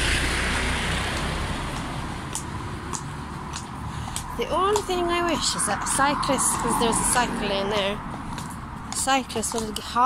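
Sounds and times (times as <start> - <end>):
heavy lorry passing: 0.0 - 10.0
road traffic: 0.0 - 10.0.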